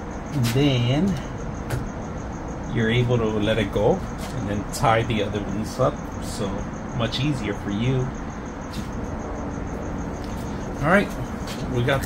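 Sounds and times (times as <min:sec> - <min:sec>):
cricket chirping: 0:00.0 - 0:12.0
low background hum: 0:00.0 - 0:12.0.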